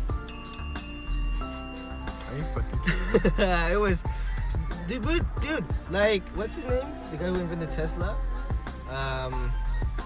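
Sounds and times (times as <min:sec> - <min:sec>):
background music: 0:00.0 - 0:10.0
bright bell-like chime: 0:00.1 - 0:02.6.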